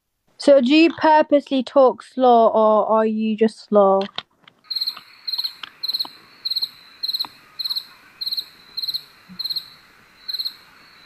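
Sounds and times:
cricket chirping: 0:04.6 - 0:11.0.

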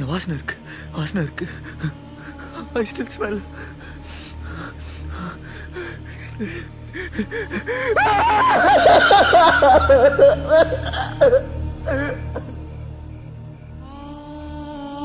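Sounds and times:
low background music: 0:00.0 - 0:15.0.

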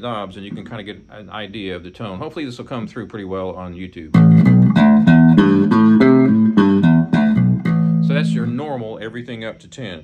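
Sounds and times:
electric bass plucked notes: 0:04.1 - 0:09.1.

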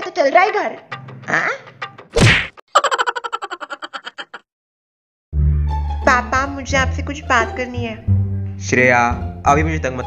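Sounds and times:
comic whack with falling pitch: 0:02.1 - 0:02.6.

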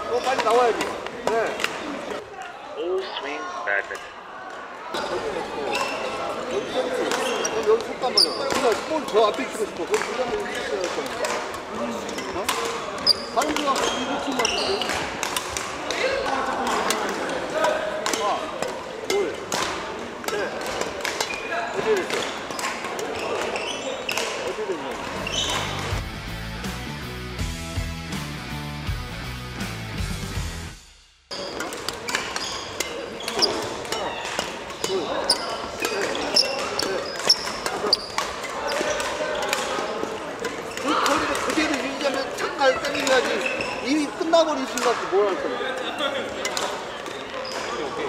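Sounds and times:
rackets hitting shuttlecocks: 0:00.1 - 0:02.0, 0:07.0 - 0:26.0, 0:31.3 - 0:43.7, 0:44.6 - 0:47.9.

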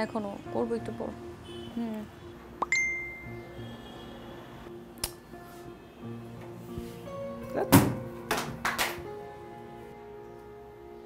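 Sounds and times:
bright bell-like ding: 0:02.6 - 0:03.5.

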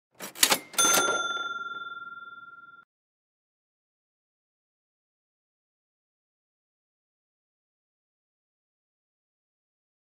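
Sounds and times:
mechanical clicking clatter: 0:00.2 - 0:01.1
bell ding: 0:00.4 - 0:02.9.

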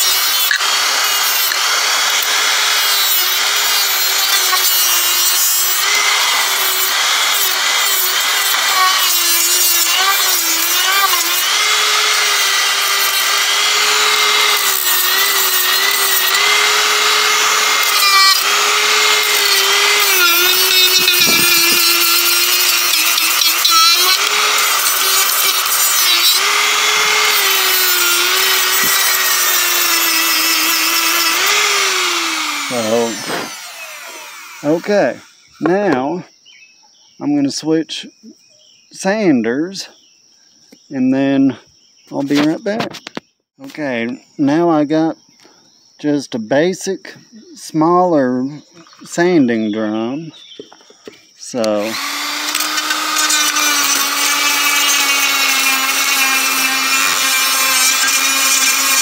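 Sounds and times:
rotary tool motor whine: 0:00.0 - 0:35.5, 0:51.6 - 0:59.0.

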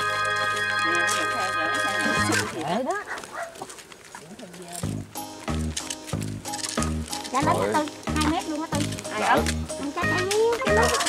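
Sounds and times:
dog barking: 0:02.3 - 0:03.8.

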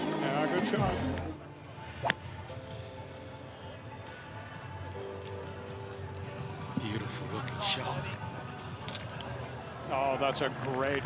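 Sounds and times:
golf club striking ball: 0:02.0 - 0:02.2.

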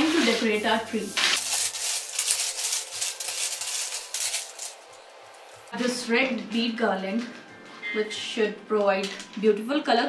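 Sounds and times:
bead garland rattling: 0:01.0 - 0:05.0.

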